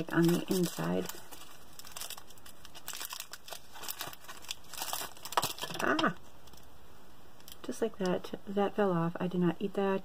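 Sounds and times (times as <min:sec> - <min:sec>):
wrapper crinkling: 0:00.0 - 0:06.7.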